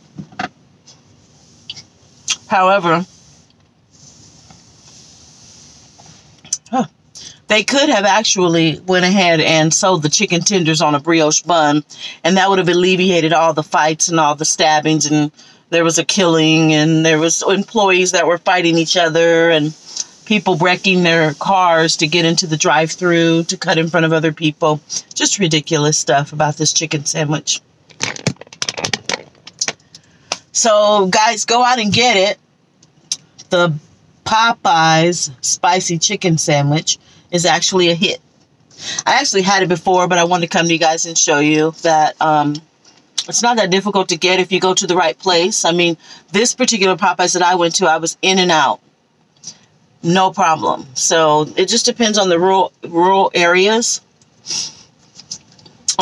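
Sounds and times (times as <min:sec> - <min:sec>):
rapid clicking and rattling: 0:27.9 - 0:29.8.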